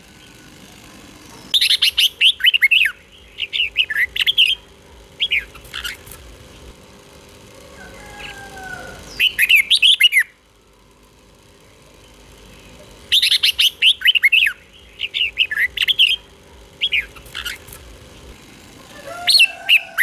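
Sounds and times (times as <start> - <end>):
bird singing whistled notes: 12.6 - 16.2.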